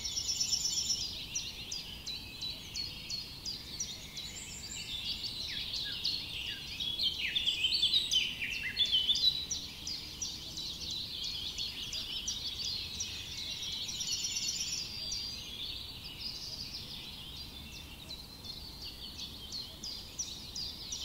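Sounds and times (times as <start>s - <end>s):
small birds chirping: 0.0s - 21.0s.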